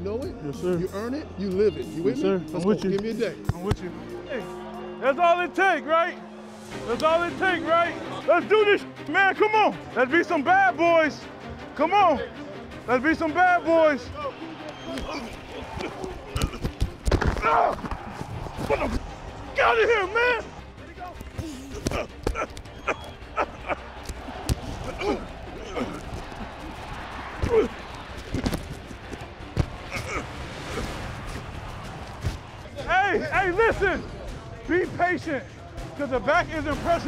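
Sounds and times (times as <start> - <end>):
players calling out: 7.0 - 35.0
players grunting: 13.1 - 34.1
shoulder pads and helmets clashing: 14.7 - 19.3, 21.1 - 30.2, 31.2 - 32.7.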